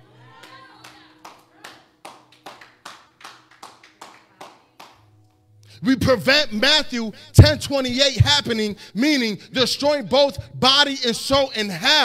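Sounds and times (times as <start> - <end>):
slow handclapping: 0.4 - 5.0.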